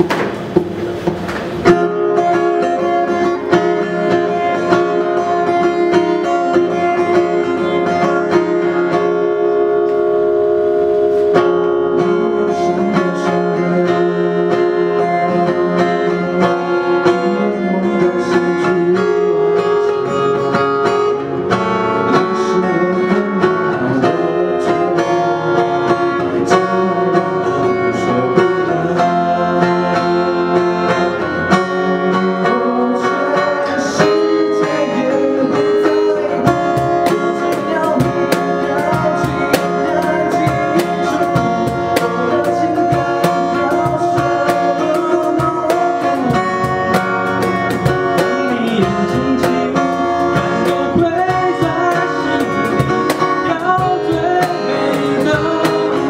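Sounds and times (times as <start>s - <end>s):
acoustic guitar playing chords: 0.0s - 56.0s.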